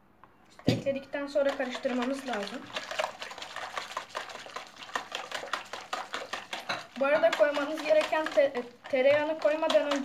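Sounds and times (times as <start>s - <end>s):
whisk beating batter in plastic bowl: 0.6s - 10.0s.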